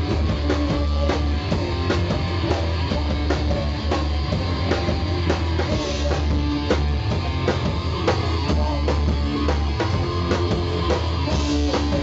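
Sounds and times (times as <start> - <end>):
punk band playing live: 0.0 - 12.0.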